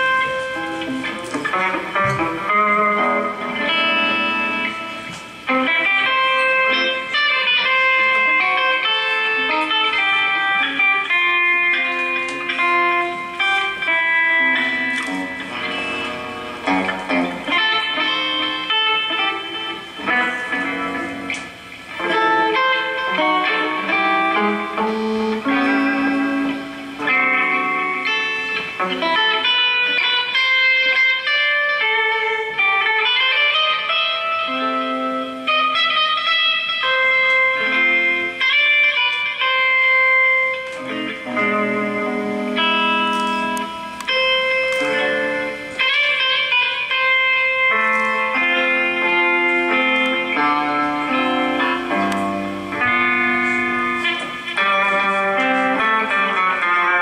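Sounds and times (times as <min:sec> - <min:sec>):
solo electric guitar melody: 0:00.0 - 0:57.0.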